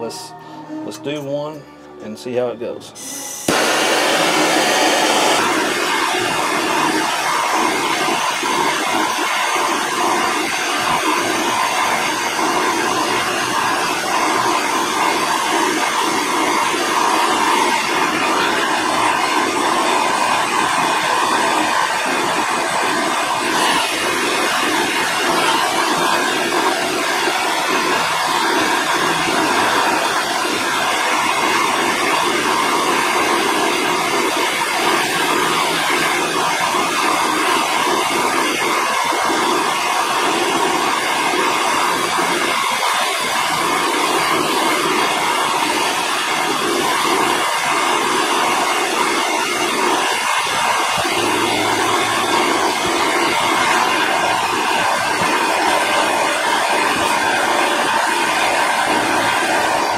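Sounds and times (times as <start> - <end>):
gas torch hissing: 3.0 - 59.9.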